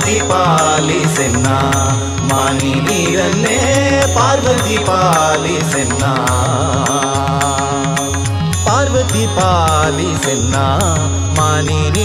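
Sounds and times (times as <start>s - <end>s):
devotional singing: 0.0s - 12.0s
light percussion: 0.0s - 12.0s.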